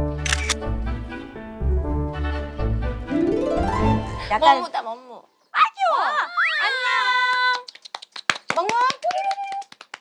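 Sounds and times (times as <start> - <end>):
camera shutter clicking: 0.2 - 0.6.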